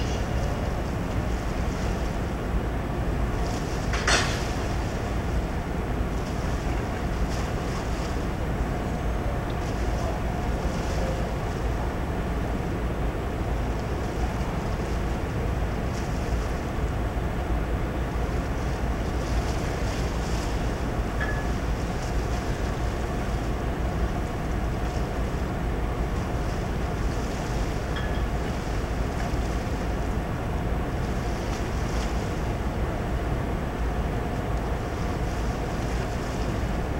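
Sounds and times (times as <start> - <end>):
faint steady hum: 0.0 - 36.9.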